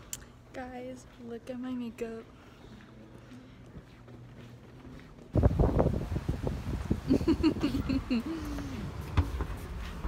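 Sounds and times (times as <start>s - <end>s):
wind buffeting microphone: 5.3s - 9.4s.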